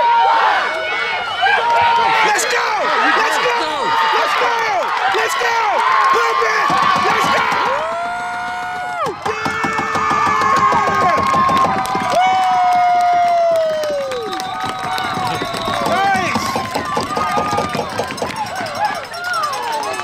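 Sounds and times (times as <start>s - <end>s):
spectators yelling and cheering: 0.0s - 20.0s.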